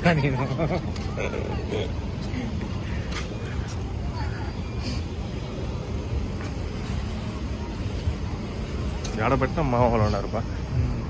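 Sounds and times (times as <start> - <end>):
faint voices: 0.0 - 11.0
traffic rumble: 0.0 - 11.0.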